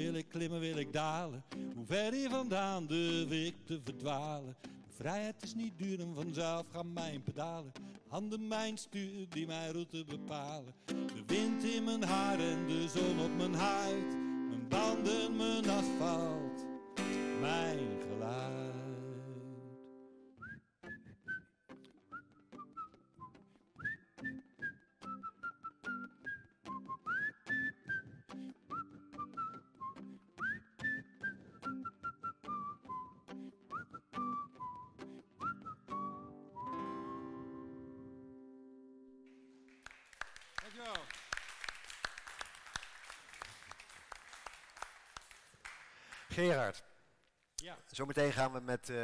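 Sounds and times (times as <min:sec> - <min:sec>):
strummed acoustic guitar: 0:00.0 - 0:20.0, 0:32.5 - 0:38.5
man whistling melody: 0:10.9 - 0:19.6, 0:20.4 - 0:38.5
audience applauding: 0:39.3 - 0:46.8.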